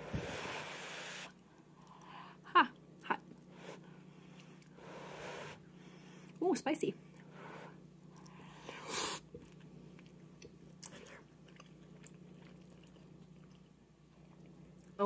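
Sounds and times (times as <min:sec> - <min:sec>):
faint low hum: 0:00.0 - 0:15.0
chewing noodles: 0:07.1 - 0:15.0.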